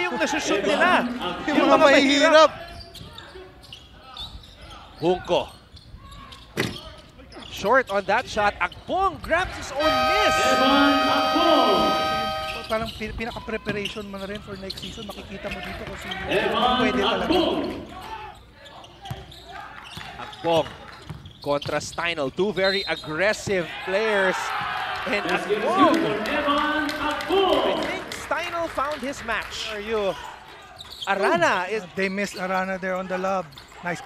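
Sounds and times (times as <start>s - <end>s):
gym hum: 9.6s - 12.8s.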